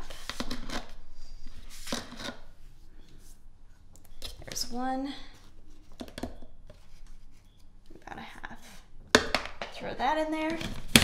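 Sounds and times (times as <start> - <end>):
scoop scraping plastic tub: 0.0 - 2.6.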